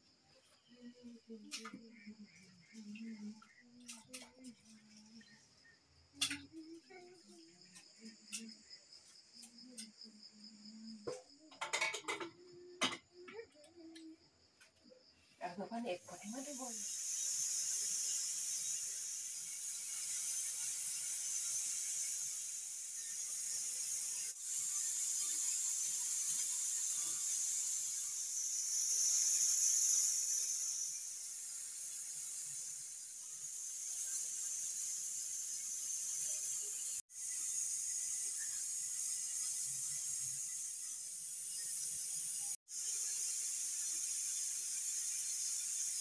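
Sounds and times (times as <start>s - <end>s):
high-pitched hiss: 0.0s - 46.0s.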